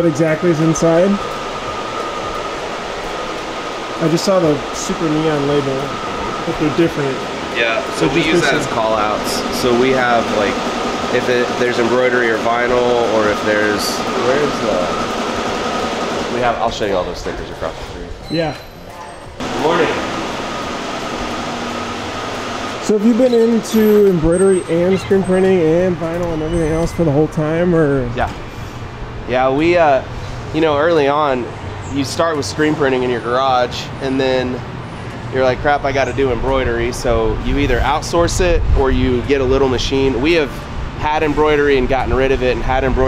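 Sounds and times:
faint high whine: 0.0 - 15.2, 18.3 - 30.0
machinery and air handling rush: 0.0 - 43.0.

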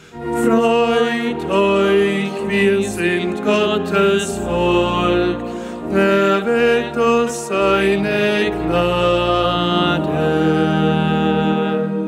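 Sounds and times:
person singing: 0.0 - 12.0
sustained low accompaniment: 0.0 - 12.0.

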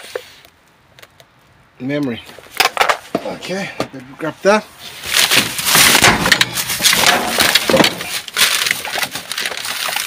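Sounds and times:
plastic bin bags rustling: 4.8 - 10.0.

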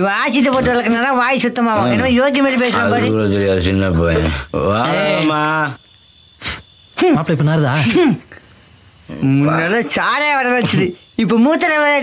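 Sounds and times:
man's voice: 0.0 - 5.8
crickets chirping: 0.0 - 12.0.

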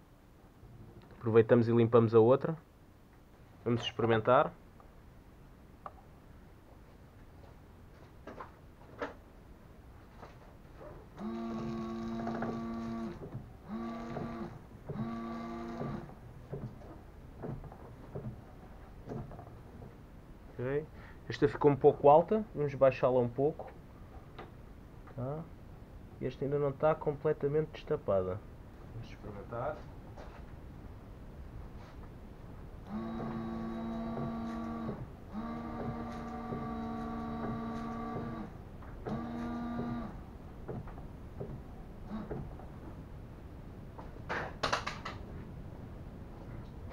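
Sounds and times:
washer pump whining: 11.2 - 16.1, 32.9 - 40.2.

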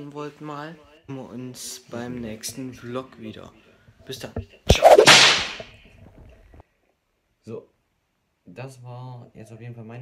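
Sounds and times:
whoosh sound effect: 4.7 - 5.6.

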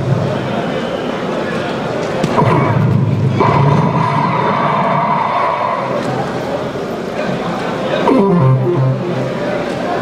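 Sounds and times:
crowd hubbub: 0.0 - 10.0
steady high tone: 8.1 - 9.7.

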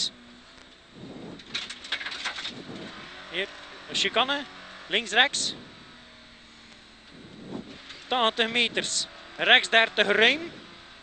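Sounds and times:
car engine revving: 0.0 - 11.0
rapid clicks and crackles: 1.4 - 3.0.

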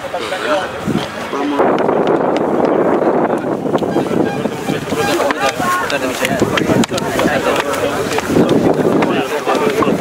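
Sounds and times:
voices talking over one another: 0.0 - 10.0
wind buffeting microphone: 0.0 - 10.0.

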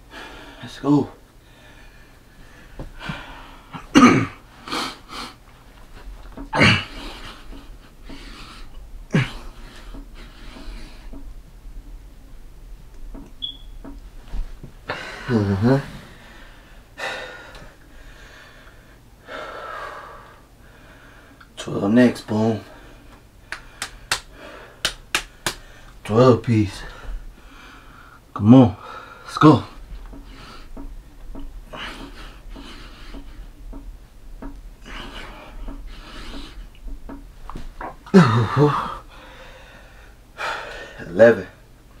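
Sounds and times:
man breathing hard: 0.0 - 0.6, 1.4 - 3.9, 6.8 - 11.2, 14.9 - 21.4, 22.7 - 26.0, 26.8 - 29.3, 34.8 - 36.6, 38.2 - 41.0.

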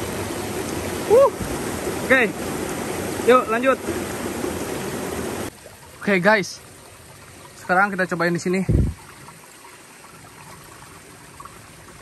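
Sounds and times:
stream water running: 0.0 - 12.0.

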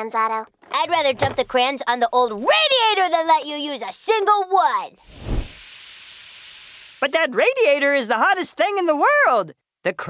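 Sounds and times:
steam radiator hissing: 5.1 - 7.3.

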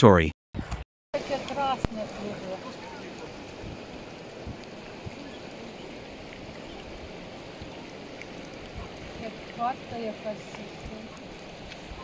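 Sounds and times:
river water rushing: 1.2 - 12.0.

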